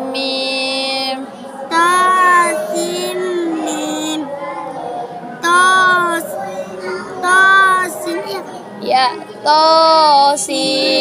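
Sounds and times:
young girl chanting: 0.0s - 4.3s, 5.4s - 8.6s, 9.5s - 11.0s.

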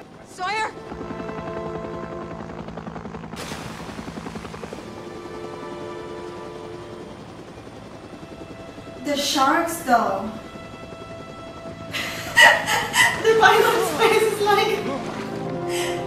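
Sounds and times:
helicopter rotor chop: 0.0s - 15.9s
dramatic music score: 0.0s - 16.0s.

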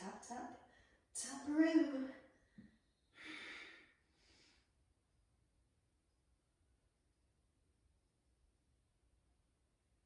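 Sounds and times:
woman breathing out: 3.1s - 4.7s.

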